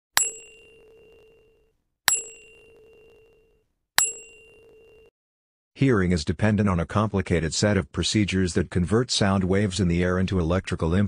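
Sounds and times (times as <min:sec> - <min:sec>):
bell-like ding: 0:00.2 - 0:05.1.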